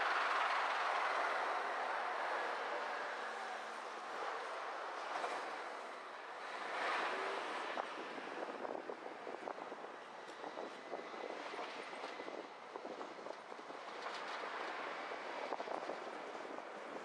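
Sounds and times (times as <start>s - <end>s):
tyre and road noise: 0.0s - 17.0s.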